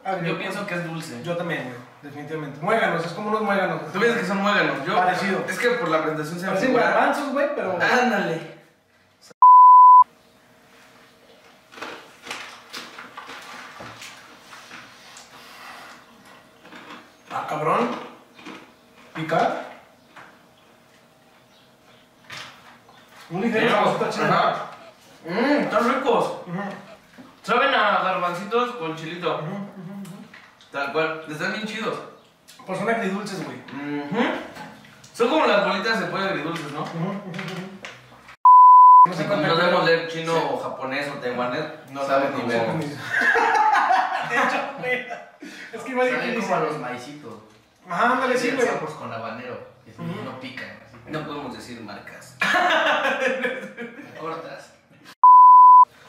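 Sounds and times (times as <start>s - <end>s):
high-pitched censor beep: 9.4s - 10.0s, 38.4s - 39.1s, 55.2s - 55.9s.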